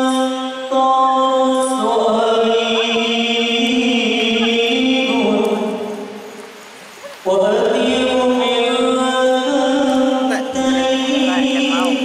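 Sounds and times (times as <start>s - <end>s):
voices chanting devotional song: 0.0s - 12.0s.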